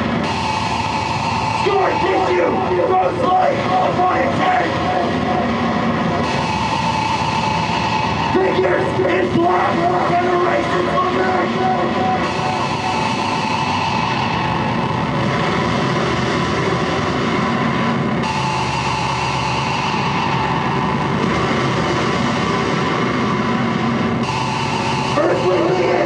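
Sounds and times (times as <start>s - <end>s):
distorted electric guitar band: 0.0s - 26.0s.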